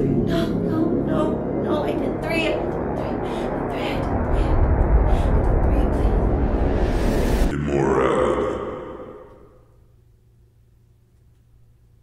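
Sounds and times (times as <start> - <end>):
breathy voice with echo: 0.0 - 1.6, 2.6 - 9.8.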